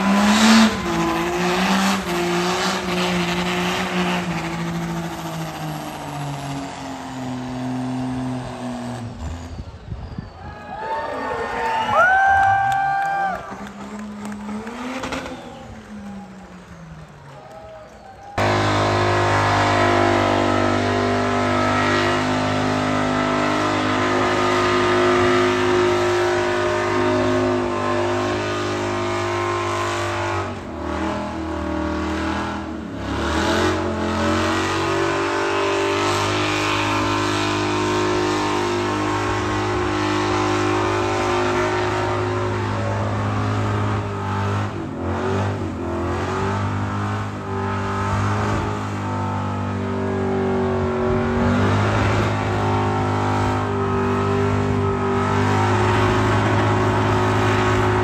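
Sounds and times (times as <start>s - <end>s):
truck engine revving high: 0.0s - 10.4s, 11.0s - 58.0s.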